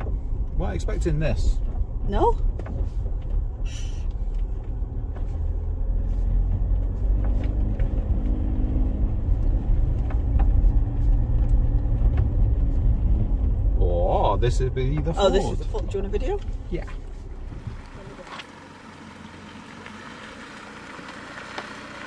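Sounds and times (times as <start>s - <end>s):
engine and tyres rumbling: 0.0s - 22.0s.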